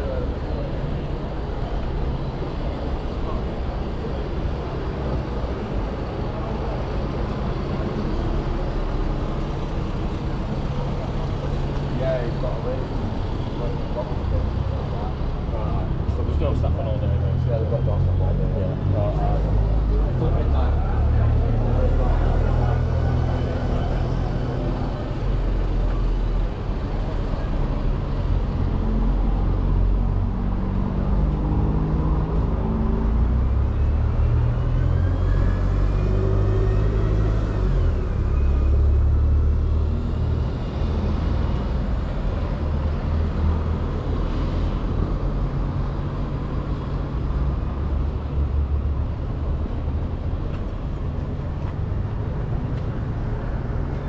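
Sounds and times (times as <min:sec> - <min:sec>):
car and bus engines rumbling: 0:00.0 - 0:54.0
vehicle accelerating: 0:28.6 - 0:54.0.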